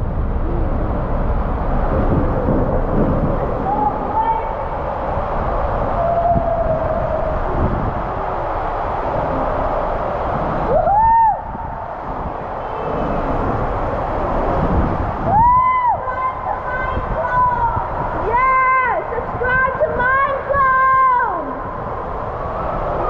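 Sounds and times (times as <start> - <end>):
raft rumbling down waterslide: 0.0 - 23.0
water rushing: 0.0 - 23.0
person whooping: 10.7 - 11.6.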